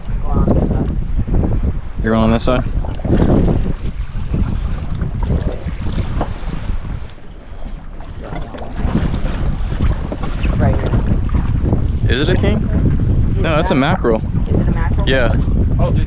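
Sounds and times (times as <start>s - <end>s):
sea noise: 0.0s - 16.0s
wind buffeting microphone: 0.0s - 16.0s.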